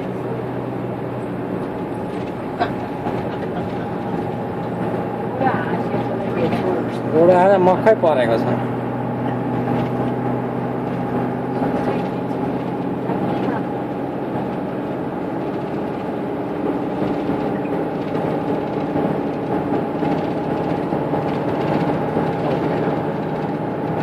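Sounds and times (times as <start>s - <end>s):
engine and road hum: 0.0s - 24.0s.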